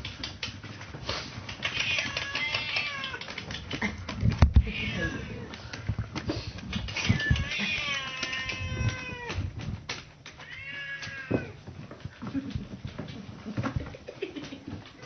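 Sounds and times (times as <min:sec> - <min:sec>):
cat meowing: 0:01.7 - 0:03.3, 0:04.6 - 0:05.6, 0:07.0 - 0:09.6, 0:10.4 - 0:11.6.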